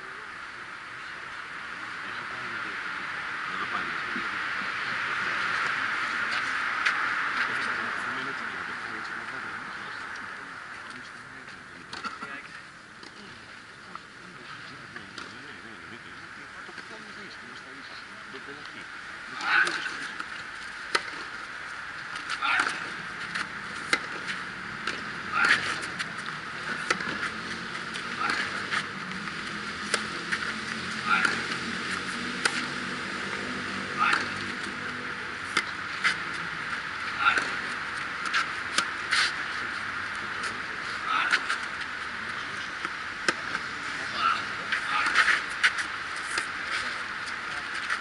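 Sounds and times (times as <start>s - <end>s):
tennis racket striking ball: 22.2s - 32.7s, 34.0s - 34.7s, 37.2s - 37.6s, 38.2s - 39.4s.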